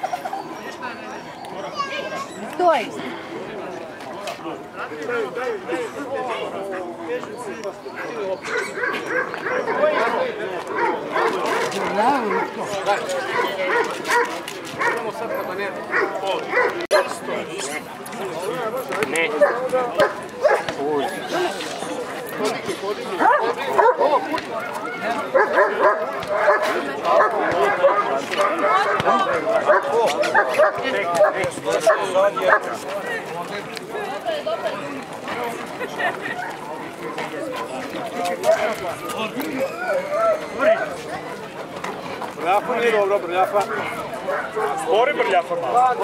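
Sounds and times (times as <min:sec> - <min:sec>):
crowd chatter: 0:00.0 - 0:46.0
dogs barking: 0:08.0 - 0:15.2, 0:15.8 - 0:17.2, 0:19.3 - 0:20.8, 0:23.1 - 0:32.8.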